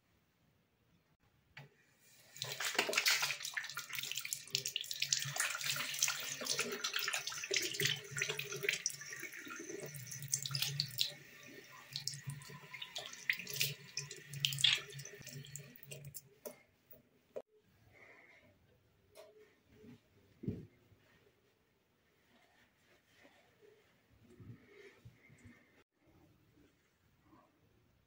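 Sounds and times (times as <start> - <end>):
water splashing into basin: 2.3 - 16.2.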